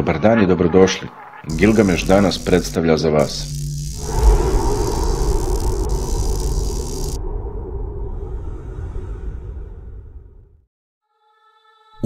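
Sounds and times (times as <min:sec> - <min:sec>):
loud hiss: 0:01.5 - 0:07.2
deep rumble: 0:01.5 - 0:10.6.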